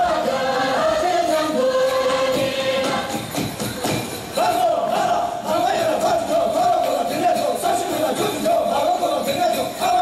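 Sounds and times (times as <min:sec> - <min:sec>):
choir singing held notes: 0:00.0 - 0:08.8
percussive beats: 0:01.8 - 0:10.0.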